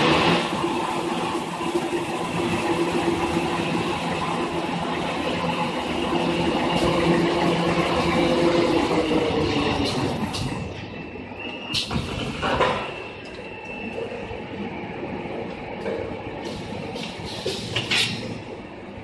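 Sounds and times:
machine humming and rattling: 0.0 - 10.7.

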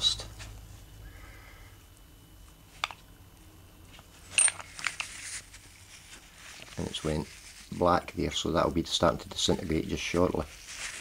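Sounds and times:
steel wool scratchy crackles: 5.0 - 8.4, 9.7 - 11.0.

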